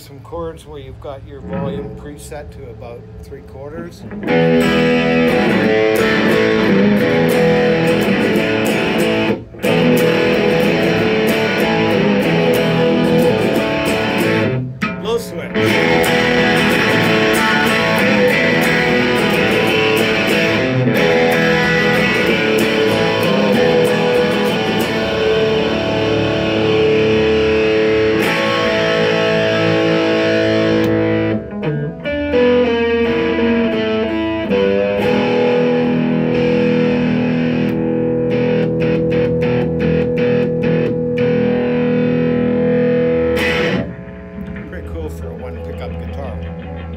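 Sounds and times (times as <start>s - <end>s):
electric guitar strumming chords: 0.1s - 46.9s.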